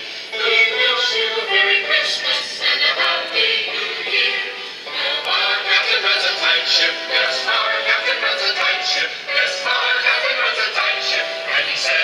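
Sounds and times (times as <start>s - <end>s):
choir singing over loudspeakers: 0.0s - 12.0s.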